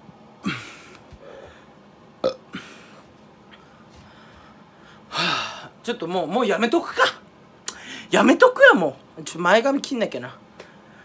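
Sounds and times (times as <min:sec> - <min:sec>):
man making gag noises: 0:00.4 - 0:01.1.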